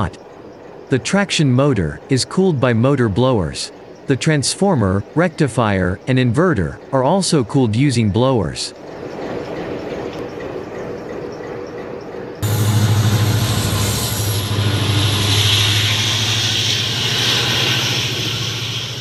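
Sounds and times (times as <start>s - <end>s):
diesel locomotive engine running: 8.2s - 19.0s
even rushing noise: 12.4s - 19.0s.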